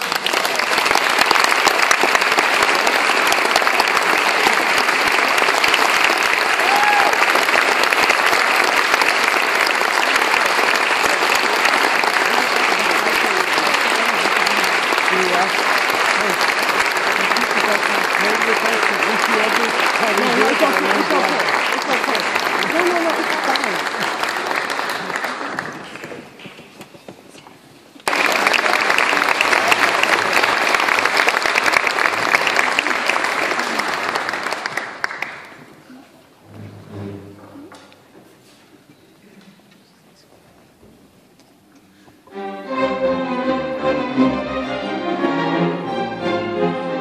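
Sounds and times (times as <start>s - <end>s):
audience applauding: 0.0s - 26.4s, 28.0s - 36.0s
voices in crowd: 11.9s - 26.4s.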